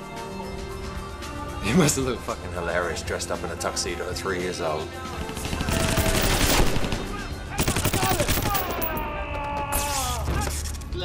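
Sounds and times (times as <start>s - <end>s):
automatic rifle fire: 5.6s - 9.0s.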